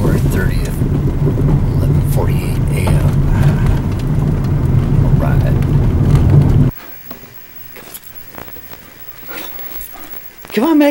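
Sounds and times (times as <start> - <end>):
car engine and tyre rumble: 0.0 - 6.7.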